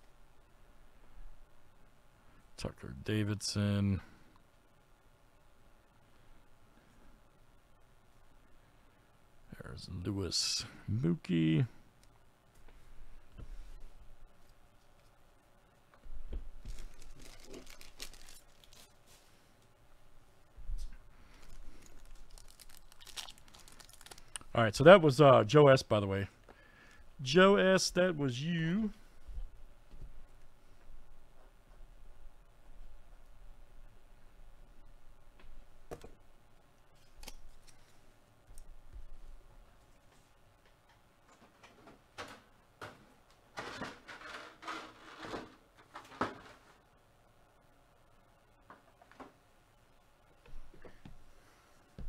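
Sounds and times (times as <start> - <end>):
card pack wrapper tearing and crinkling: 16.6 - 19.0, 21.3 - 24.5.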